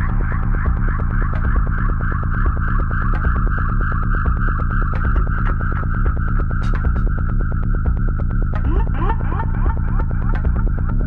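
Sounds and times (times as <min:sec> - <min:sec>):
techno track: 0:00.0 - 0:11.0.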